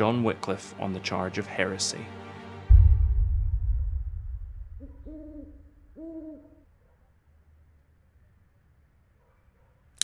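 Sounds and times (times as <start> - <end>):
owl hooting: 4.8 - 7.0.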